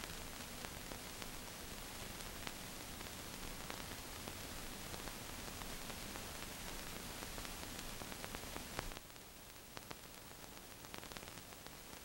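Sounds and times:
film soundtrack hiss: 0.0s - 12.0s.

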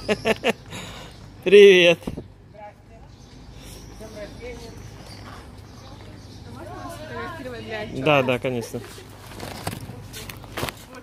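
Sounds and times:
footsteps on paving stones: 3.3s - 11.0s.

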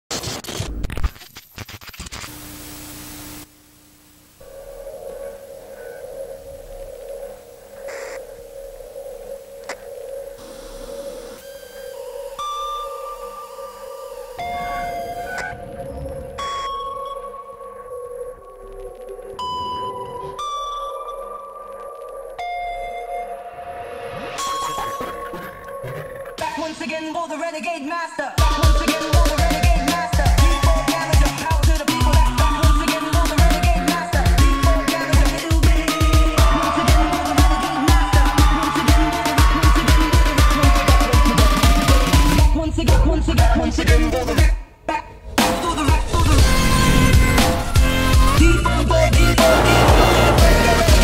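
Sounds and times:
static and glitchy noise: 0.1s - 26.6s
steady electronic drone: 4.2s - 26.4s, 28.4s - 43.1s, 45.2s - 51.0s
electronic beeps and tones: 11.4s - 17.5s, 24.3s - 26.0s.

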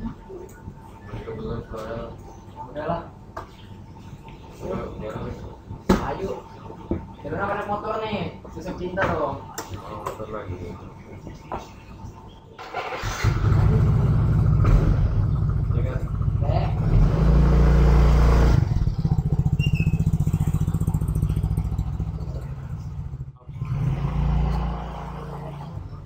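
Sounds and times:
motorcycle engine starting and idling: 12.6s - 26.0s.

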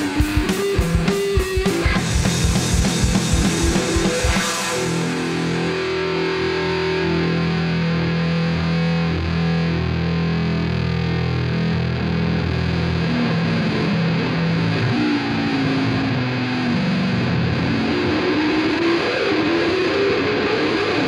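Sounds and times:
distorted electric bass solo: 0.0s - 21.0s.

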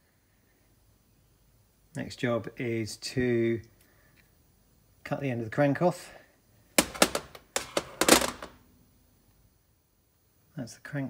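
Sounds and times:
metal parts clattering on workbench: 6.8s - 8.6s.

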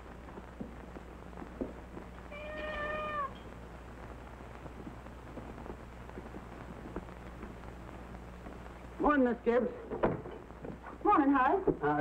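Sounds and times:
cat meowing: 2.3s - 3.4s.

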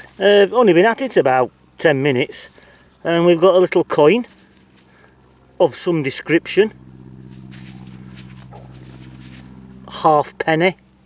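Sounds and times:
metal detector buzzing tone: 6.9s - 10.4s.

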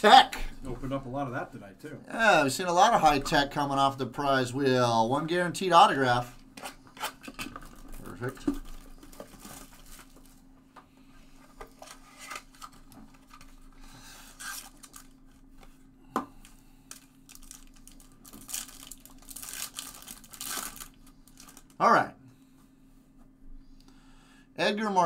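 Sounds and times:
foil wrapper tearing and crinkling: 14.3s - 15.2s, 16.9s - 21.8s.

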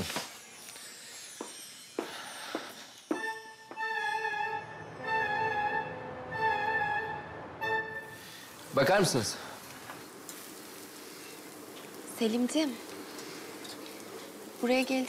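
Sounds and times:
violin sustained notes: 3.3s - 8.4s.

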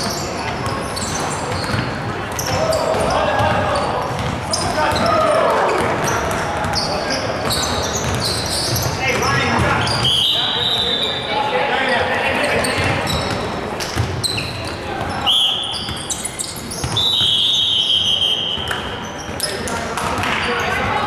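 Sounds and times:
basketball bouncing on court: 0.0s - 10.2s, 12.5s - 15.2s, 15.8s - 17.5s, 18.6s - 21.0s
players' voices echoing: 0.0s - 21.0s
sneakers squeaking on gym floor: 0.0s - 21.0s.

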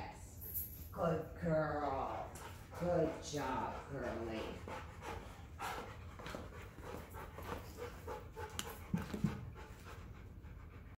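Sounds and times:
dog panting: 1.5s - 11.0s.

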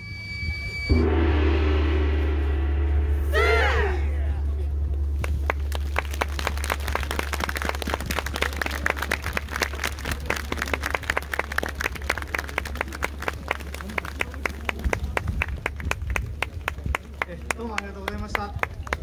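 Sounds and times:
steady low hum: 0.2s - 10.1s
crowd applauding: 5.2s - 19.0s.

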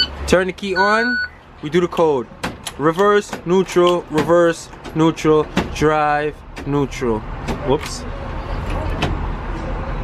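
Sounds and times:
bus cab low hum: 0.0s - 1.4s.

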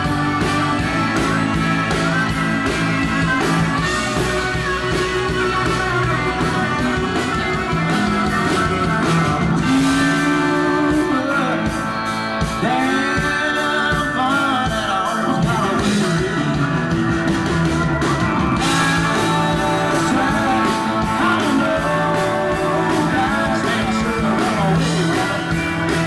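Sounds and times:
bass and drums: 0.0s - 26.0s
electric guitar: 0.0s - 26.0s.

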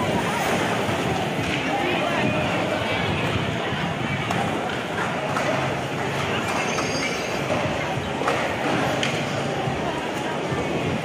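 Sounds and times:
skateboards rolling on concrete: 0.0s - 11.0s
skateboard clacks: 0.5s - 1.8s, 4.1s - 10.8s.

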